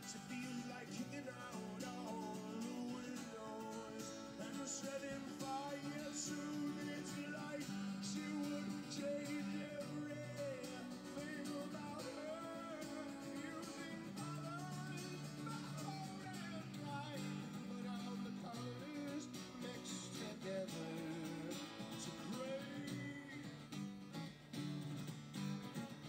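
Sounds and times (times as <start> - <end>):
man singing: 0.0 - 23.8
acoustic guitar strumming: 0.0 - 26.0.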